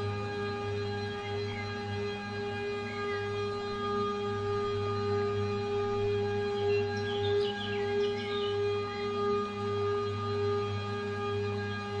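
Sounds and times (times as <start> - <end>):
singing bowl drone: 0.0 - 12.0.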